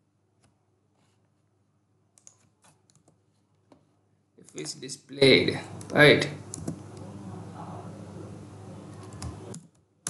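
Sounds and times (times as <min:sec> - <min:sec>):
computer keyboard keystrokes: 0:02.2 - 0:03.2, 0:05.8 - 0:06.8, 0:09.0 - 0:09.8.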